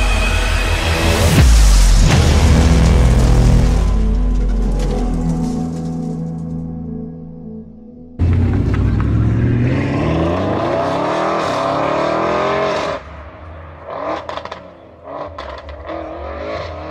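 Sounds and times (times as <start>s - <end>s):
car engine revving hard: 8.3s - 13.0s, 13.8s - 16.9s.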